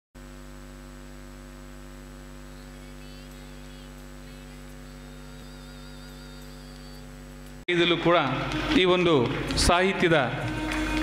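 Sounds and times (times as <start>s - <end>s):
electrical mains hum: 0.2s - 11.0s.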